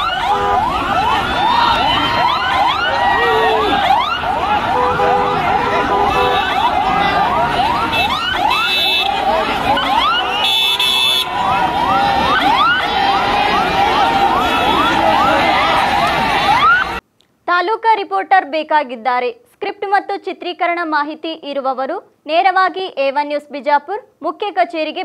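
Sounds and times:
crowd shouting: 0.0s - 17.0s
siren yelping: 0.0s - 17.0s
car horn blasts: 4.7s - 6.7s, 7.8s - 11.4s.

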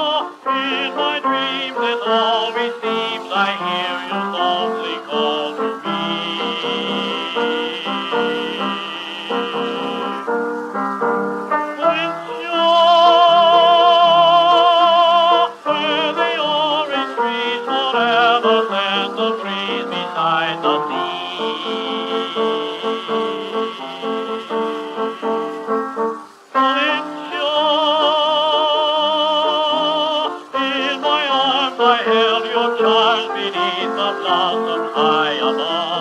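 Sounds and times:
piano accompaniment: 0.0s - 36.0s.

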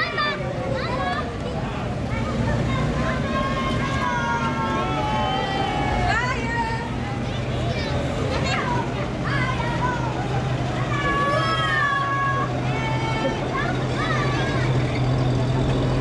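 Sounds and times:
children and crowd voices: 0.0s - 16.0s
truck engine running: 0.0s - 16.0s.

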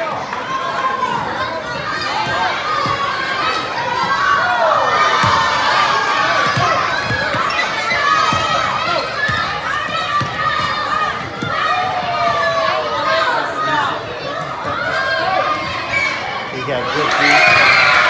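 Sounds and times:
children shouting: 0.0s - 18.0s.

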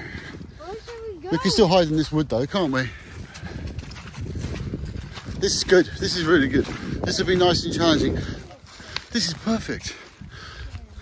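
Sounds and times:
footsteps on grass and dry leaves: 0.0s - 11.0s.

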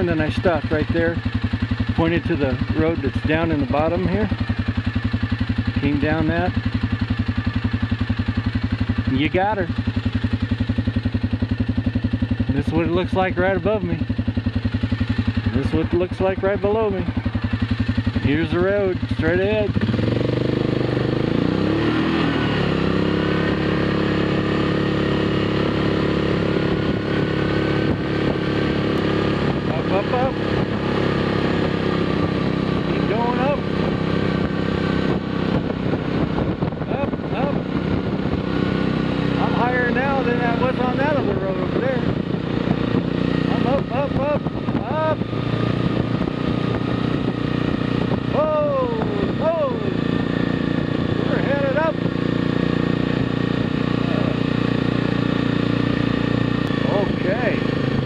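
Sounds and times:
atv engine running: 0.0s - 58.0s
rider exclaiming: 27.8s - 31.7s, 32.8s - 33.8s, 36.8s - 38.0s, 39.2s - 42.2s, 42.8s - 45.7s, 48.0s - 52.9s, 53.5s - 55.0s, 56.7s - 57.8s.

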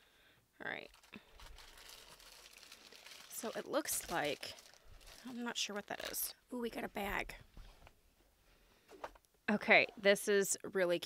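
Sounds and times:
plastic wrapping crinkling: 0.8s - 6.4s.

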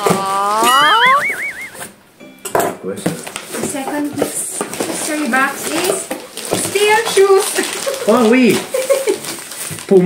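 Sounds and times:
person exclaiming into squeal: 0.1s - 1.8s.

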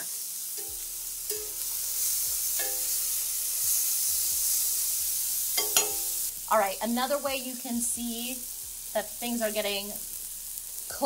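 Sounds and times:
meat sizzling in a skillet: 0.0s - 11.0s.

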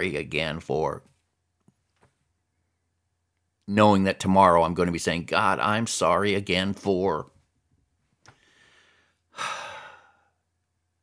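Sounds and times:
man breathing and sighing: 8.2s - 10.4s.

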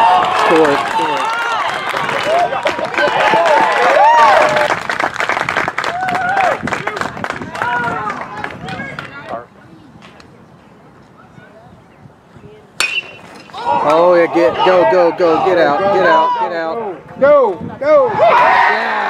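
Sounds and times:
spectators shouting and talking: 0.0s - 4.9s, 5.8s - 19.0s
metal bat hitting ball: 12.8s - 13.6s.

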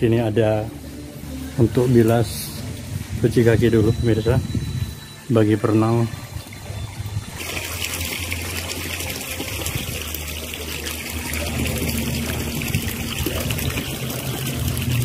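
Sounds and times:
low steady hum: 0.0s - 15.0s
water running: 1.3s - 15.0s.

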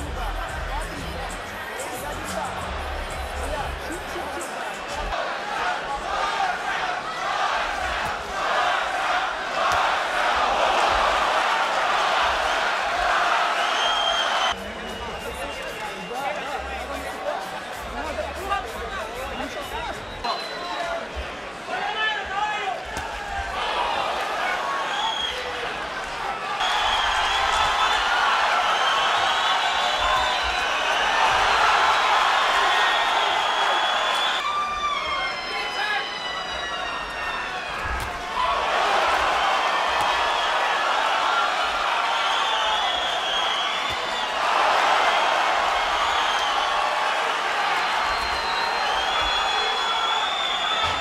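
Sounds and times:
boxing arena crowd noise: 0.0s - 51.0s.

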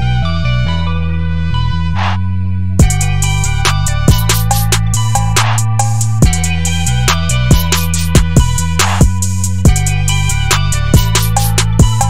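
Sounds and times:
low sustained bass notes: 0.0s - 12.0s
drum machine hits: 2.8s - 12.0s
held synth melody: 2.8s - 12.0s.

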